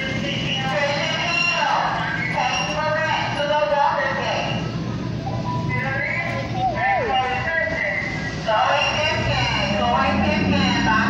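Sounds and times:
background chatter: 0.0s - 11.0s
steady low rumble: 3.3s - 11.0s.

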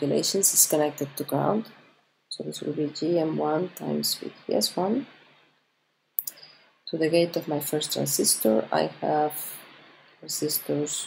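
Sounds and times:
person speaking: 0.0s - 5.2s, 6.2s - 11.0s.

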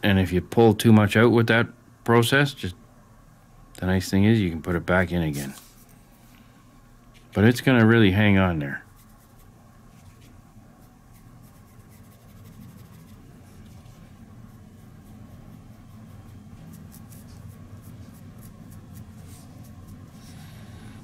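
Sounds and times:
low steady hum: 0.0s - 21.0s
paintbrush scratching: 8.8s - 20.6s.

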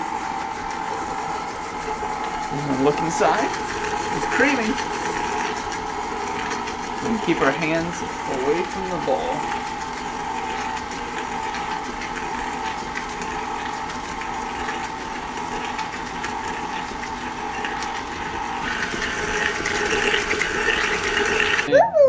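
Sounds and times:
stand mixer running: 0.0s - 21.8s.

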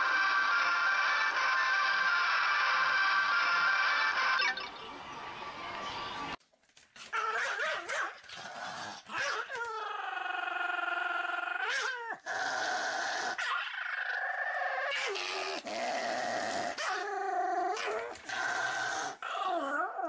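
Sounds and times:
dog whining: 9.1s - 20.0s.

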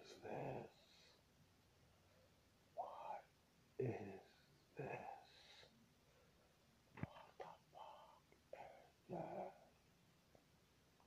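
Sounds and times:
faint whispering voice: 0.0s - 1.2s, 2.8s - 5.7s, 7.0s - 9.8s.

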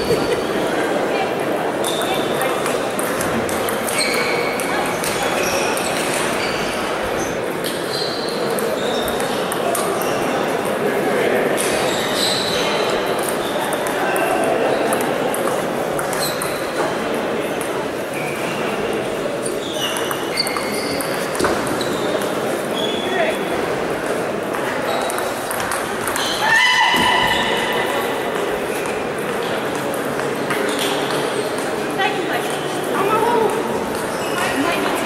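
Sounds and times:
murmur of voices: 0.0s - 35.0s.

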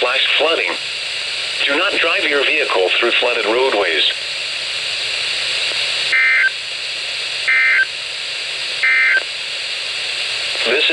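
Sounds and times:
radio hiss: 0.0s - 10.9s
digital data tones: 6.1s - 6.5s, 7.5s - 7.9s, 8.8s - 9.2s.

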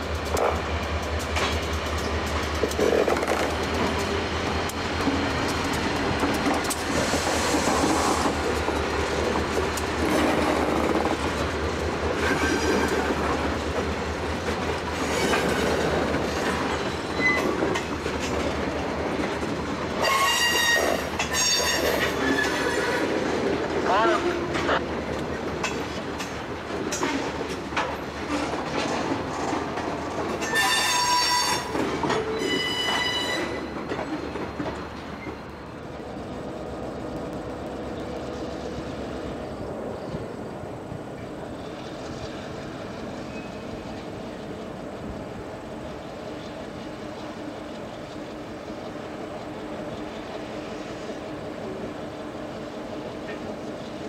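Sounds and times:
freight train cars rumbling past: 0.0s - 54.0s
train wheels squealing: 12.2s - 13.1s, 16.6s - 17.8s, 20.0s - 23.0s, 30.4s - 35.6s, 41.4s - 44.3s.

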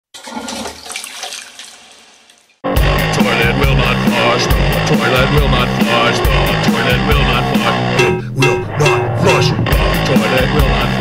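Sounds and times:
toilet flushing: 0.1s - 5.0s
punk rock band playing: 2.6s - 11.0s.

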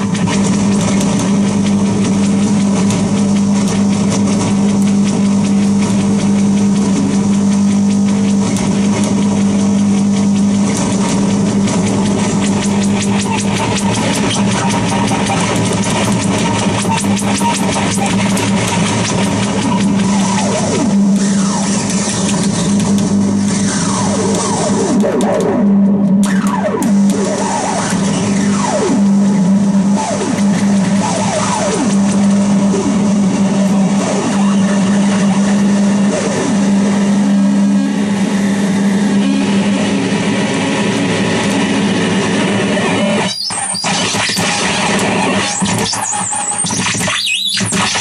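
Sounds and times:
steady low drone: 0.0s - 43.2s
distorted wall of noise: 0.0s - 48.0s.

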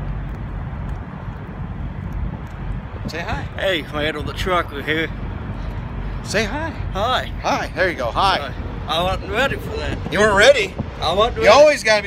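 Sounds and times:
wind on microphone: 0.0s - 6.4s, 7.3s - 12.0s
semi trucks rumbling: 0.0s - 12.0s.

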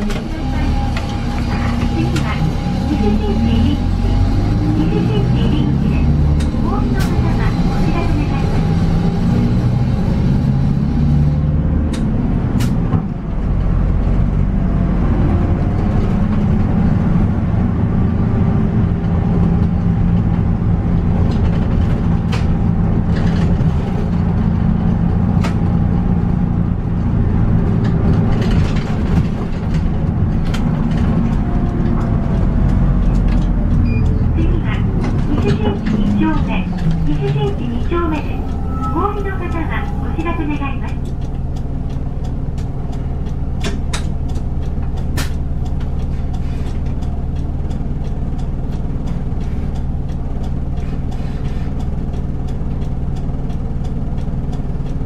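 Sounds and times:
diesel bus engine running: 0.0s - 55.0s.

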